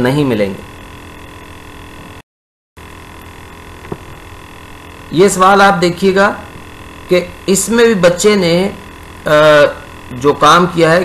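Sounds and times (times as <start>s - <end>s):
electrical mains hum with hiss: 0.0s - 2.2s, 2.8s - 11.0s.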